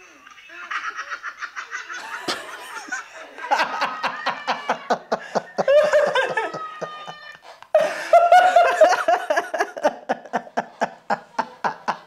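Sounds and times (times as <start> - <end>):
people laughing heartily: 0.5 - 12.0.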